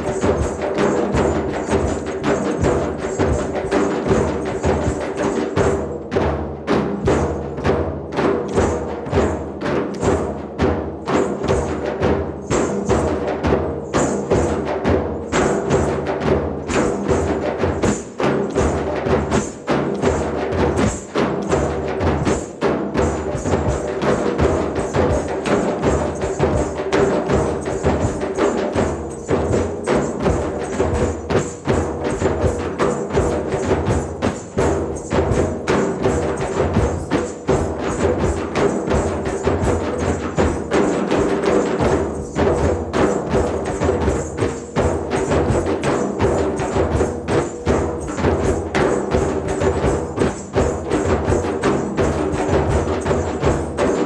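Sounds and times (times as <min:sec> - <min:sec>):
hand drums playing fast rhythm: 0:00.0 - 0:54.0.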